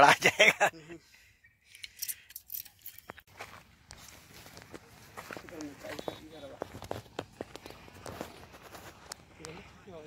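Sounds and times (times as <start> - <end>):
footsteps on loose stones: 3.0 - 9.5.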